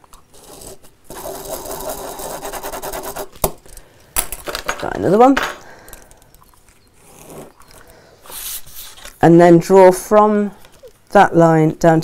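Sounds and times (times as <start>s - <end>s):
felt-tip pen scratching on paper: 0.3s - 3.3s.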